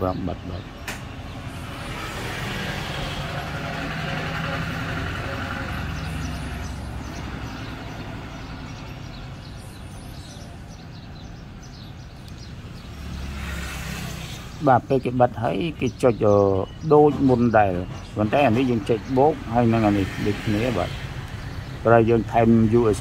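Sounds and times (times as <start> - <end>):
traffic rumble with hiss: 0.0 - 23.0.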